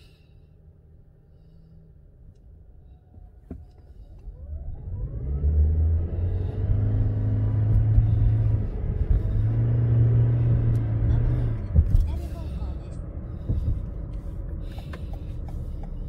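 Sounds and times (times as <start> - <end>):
road noise: 0.0 - 16.0
car engine accelerating: 3.1 - 16.0.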